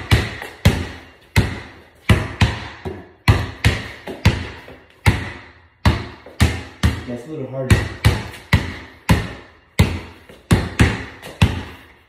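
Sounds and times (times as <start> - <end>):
basketball bouncing on concrete: 0.0 - 12.0.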